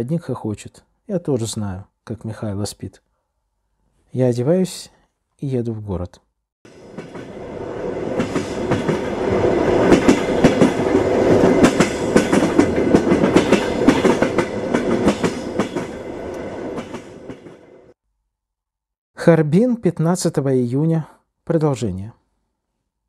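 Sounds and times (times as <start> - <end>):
train wheels clicking over rail joints: 8.2 - 17.6.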